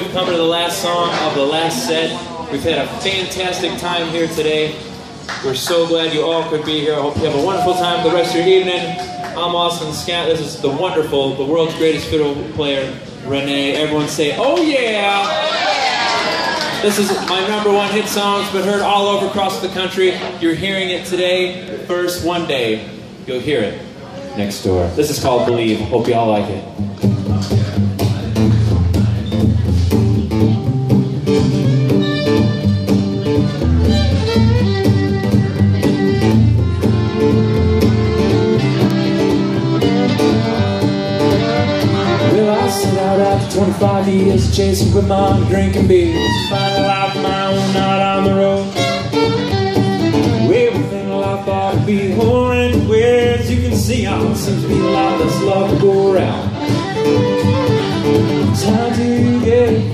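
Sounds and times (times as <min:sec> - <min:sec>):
strummed acoustic guitar: 0:26.8 - 0:59.9
fiddle melody: 0:29.6 - 0:59.9.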